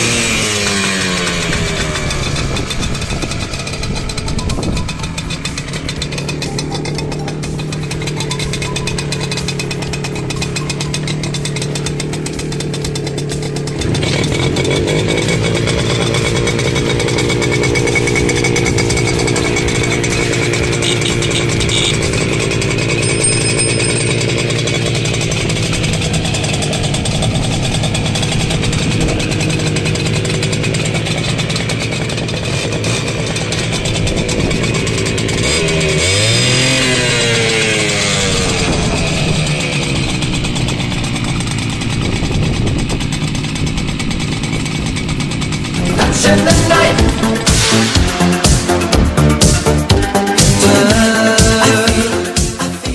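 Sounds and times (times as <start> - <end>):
moped engine idling: 0.0 - 52.9.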